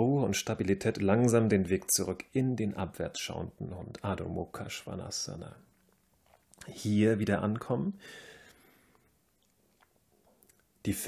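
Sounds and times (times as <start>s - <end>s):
man talking: 0.0s - 5.7s, 6.6s - 8.0s
faint small clicks: 8.4s - 10.8s.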